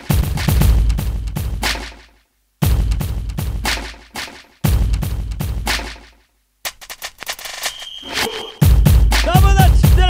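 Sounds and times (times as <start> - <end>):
clicks speeding into a rattle: 6.7 - 7.8
high beep: 7.7 - 8.7.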